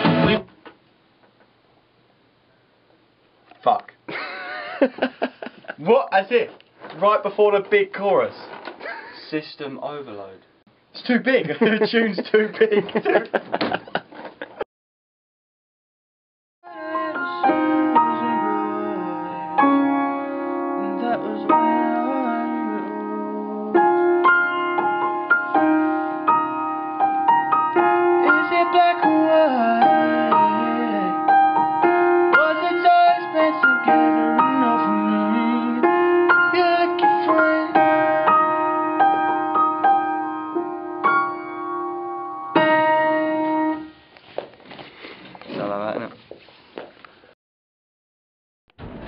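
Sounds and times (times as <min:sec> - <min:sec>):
grand piano chords: 0:16.7 - 0:43.9.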